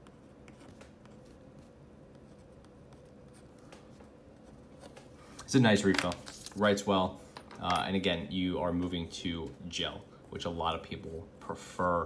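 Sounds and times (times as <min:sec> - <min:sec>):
pen scratching on paper: 0:00.0 - 0:05.0
faint steady hum: 0:00.0 - 0:12.0.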